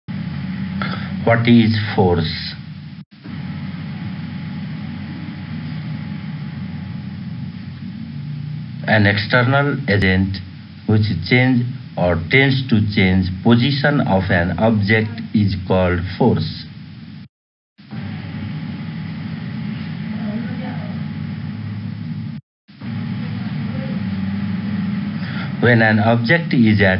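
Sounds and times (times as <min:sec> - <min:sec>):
low rumble: 0:00.1 - 0:15.2, 0:17.9 - 0:26.8
faint hum: 0:00.1 - 0:26.9.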